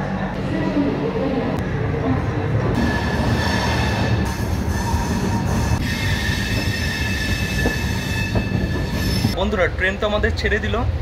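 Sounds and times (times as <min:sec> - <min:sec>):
train running gear rumble: 0:02.0 - 0:11.0.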